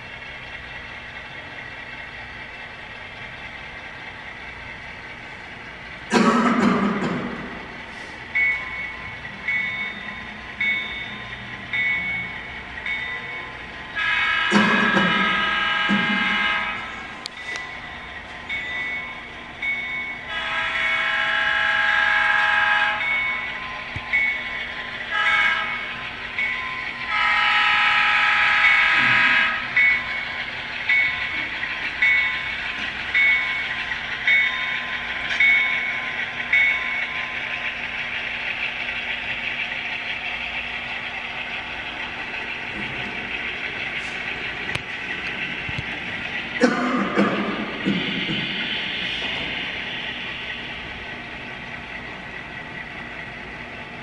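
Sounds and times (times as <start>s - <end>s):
diesel engine hum: 0.0s - 54.0s
locomotive bell ringing: 7.2s - 54.0s
model locomotive horn: 14.0s - 17.0s, 20.3s - 23.1s, 25.1s - 25.9s, 27.1s - 29.7s.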